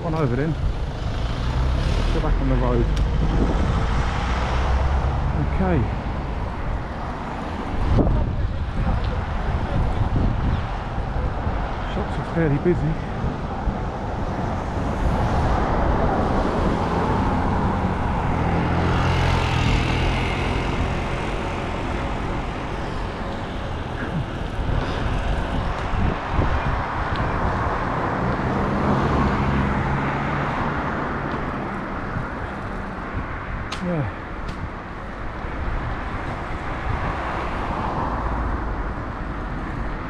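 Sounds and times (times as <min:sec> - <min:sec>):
passing motor vehicles: 0:00.0 - 0:40.0
road and wind noise: 0:00.0 - 0:40.0.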